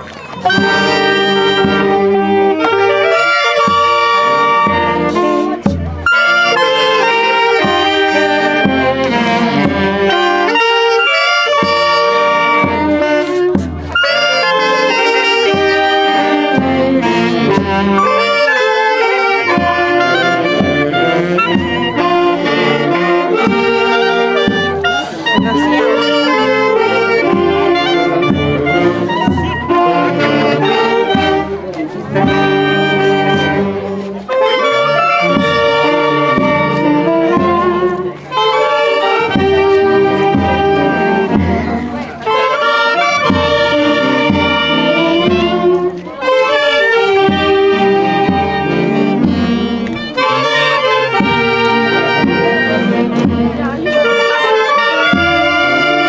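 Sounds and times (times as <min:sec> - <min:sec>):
saxophones and brass: 0:00.0 - 0:56.0
drum beat: 0:11.5 - 0:53.8.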